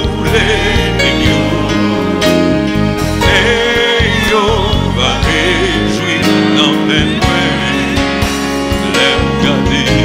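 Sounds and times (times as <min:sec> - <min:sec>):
instrumental accompaniment: 0:00.0 - 0:10.0
steady bass line: 0:00.0 - 0:10.0
voices singing worship music: 0:00.0 - 0:10.0.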